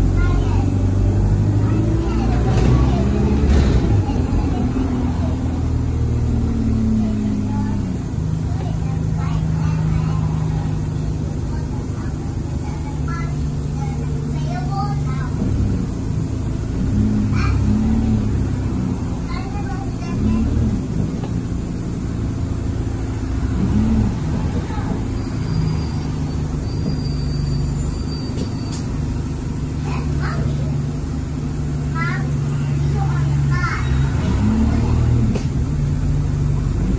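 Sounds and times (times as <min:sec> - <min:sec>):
bus diesel engine humming: 0:00.0 - 0:36.9
passengers talking: 0:00.0 - 0:36.9.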